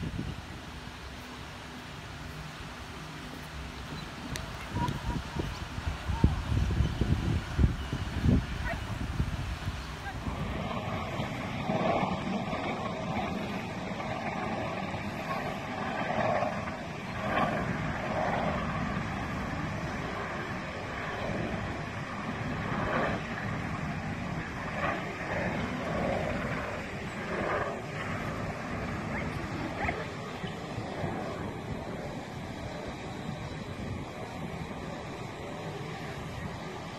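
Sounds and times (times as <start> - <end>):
wind buffeting microphone: 0.0 - 36.9.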